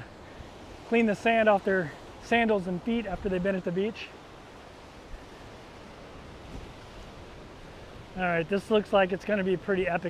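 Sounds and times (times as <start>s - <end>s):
surf breaking on rocks: 0.0s - 10.0s
wind rumbling on microphone: 4.2s - 10.0s.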